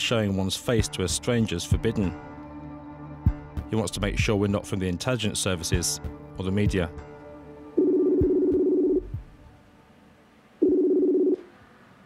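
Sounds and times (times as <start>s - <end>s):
video call ringing beeps: 7.8s - 9.1s, 10.6s - 11.5s.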